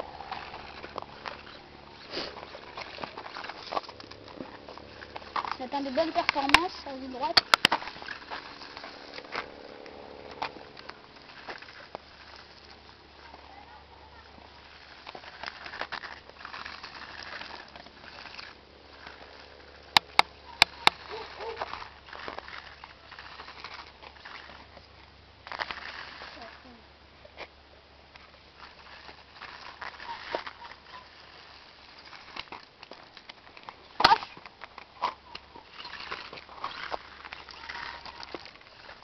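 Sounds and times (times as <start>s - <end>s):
toy car electric motor whirring: 14.5s - 24.8s, 35.3s - 39.0s.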